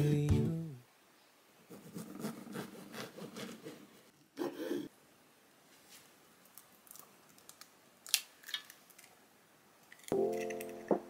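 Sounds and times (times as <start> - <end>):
eggshell crackling: 6.4 - 9.2, 9.8 - 11.0
egg cracking against dish: 6.5 - 9.2.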